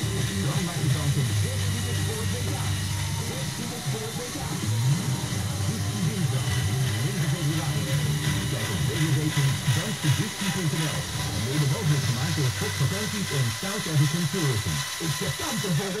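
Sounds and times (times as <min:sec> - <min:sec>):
toy electric motors running: 0:00.0 - 0:16.0
voices talking: 0:00.0 - 0:16.0.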